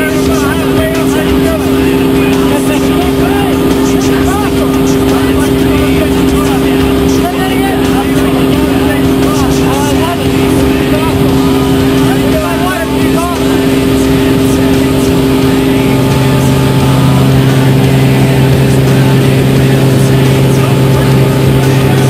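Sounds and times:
deeper hum: 0.0s - 22.0s
plane engine and propeller droning: 0.0s - 22.0s.

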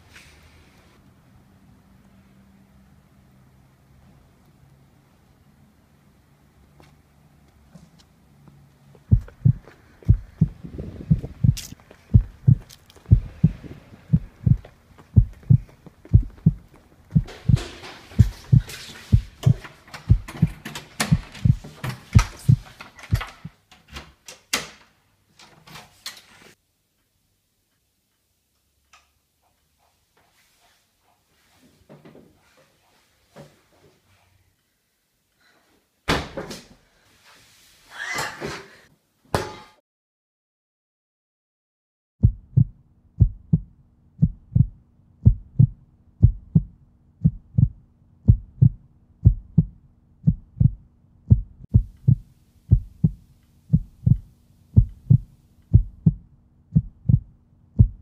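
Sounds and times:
heartbeat thumps: 9.0s - 23.6s, 42.2s - 58.0s
rustling: 9.0s - 23.6s.

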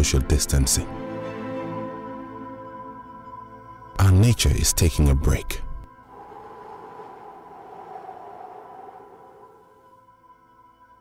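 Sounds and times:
soft ambient music: 0.0s - 11.0s.

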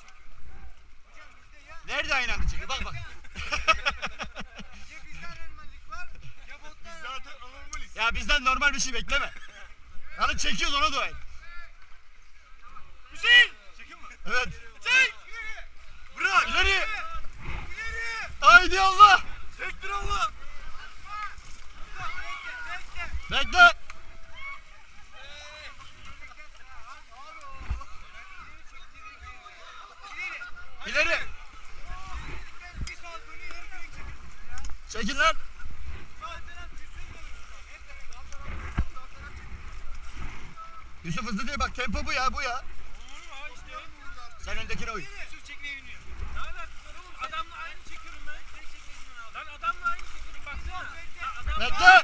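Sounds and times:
people chattering and calling: 0.0s - 52.0s
river water: 0.0s - 52.0s
people calling out: 14.8s - 26.3s
wind rumbling on microphone: 16.5s - 24.7s, 30.6s - 43.7s, 44.3s - 47.2s.

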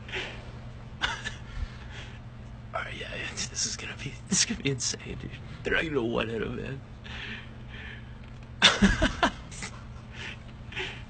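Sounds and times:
man laughing loudly: 1.0s - 1.5s, 8.6s - 11.0s.

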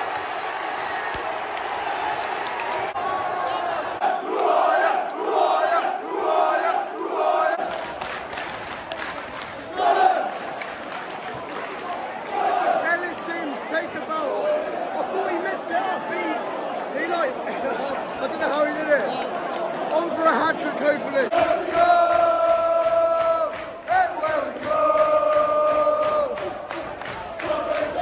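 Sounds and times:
crowd chanting in unison: 0.0s - 8.0s, 9.6s - 28.0s
crowd singing: 21.2s - 28.0s.

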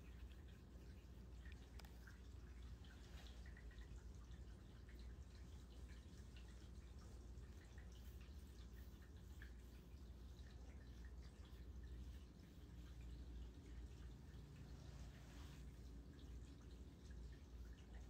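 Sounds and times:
faint clicks: 1.4s - 2.3s.

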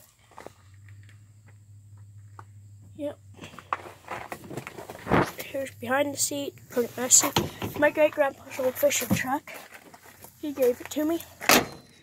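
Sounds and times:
low steady hum: 0.1s - 12.0s.

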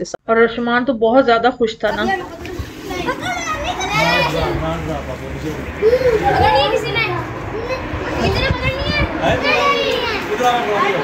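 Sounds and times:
children talking and calling out: 1.9s - 11.0s.

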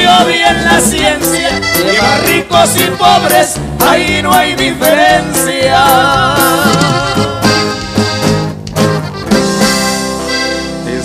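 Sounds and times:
live band playing instrumental: 0.0s - 11.0s.

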